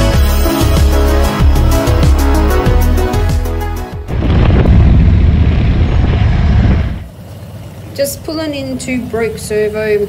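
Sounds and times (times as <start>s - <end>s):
background music: 0.0s - 4.2s
motorcycle engine: 4.0s - 10.0s
wind buffeting microphone: 4.1s - 7.1s
wind rush: 4.1s - 7.1s.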